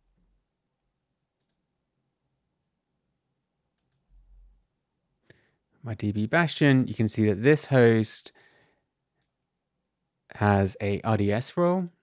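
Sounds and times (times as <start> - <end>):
keyboard and mouse clicks: 1.4 - 1.6, 3.7 - 4.5.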